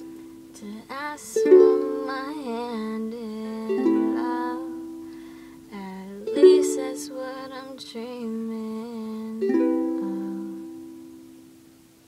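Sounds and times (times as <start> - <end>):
ukulele chord ringing out: 1.3 - 5.5, 9.4 - 11.6.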